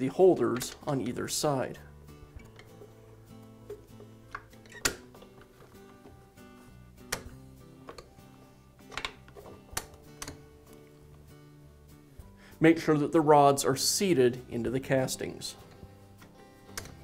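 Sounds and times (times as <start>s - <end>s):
quiet background music: 0.0s - 17.0s
sharp clicks and knocks: 8.8s - 10.4s.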